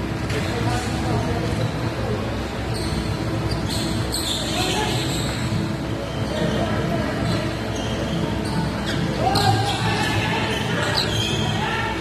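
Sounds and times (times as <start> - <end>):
low background noise: 0.0 - 12.0
voices: 0.2 - 12.0.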